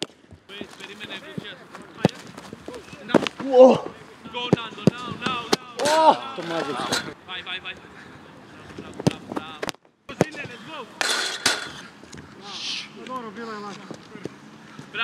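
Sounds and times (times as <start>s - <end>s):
people laughing: 5.7s - 7.2s.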